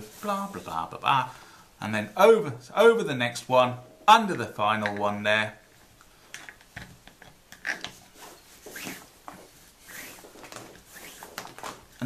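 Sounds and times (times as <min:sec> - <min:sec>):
cord sliding against cord: 0:07.6 - 0:12.0.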